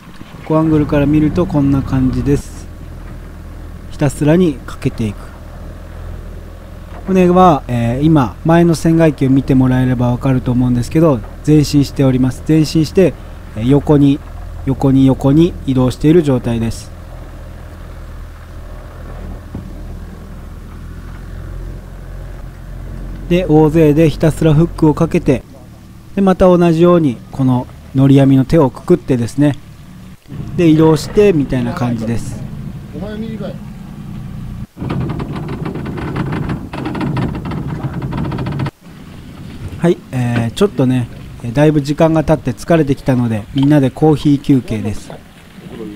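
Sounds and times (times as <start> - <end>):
outboard motor running: 0.0 - 45.9.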